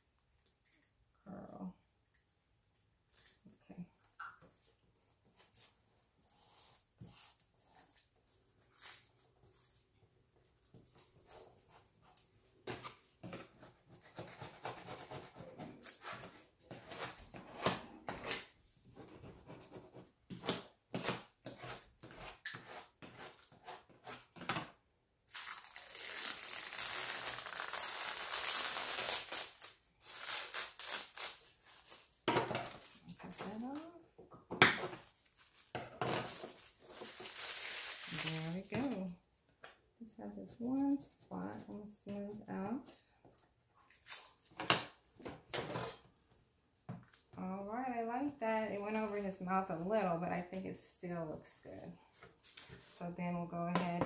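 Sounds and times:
plastic tape crinkling: 25.3 - 34.0, 34.7 - 39.0.

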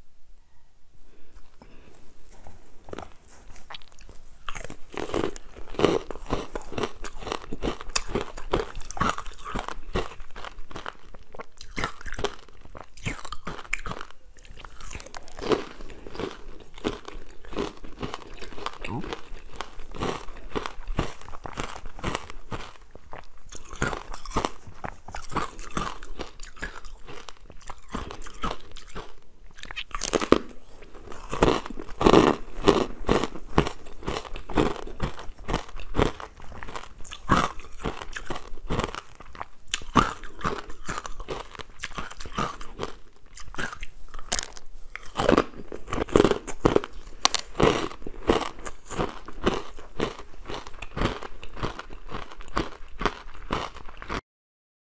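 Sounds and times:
chewing crunchy ice: 1.4 - 54.2.

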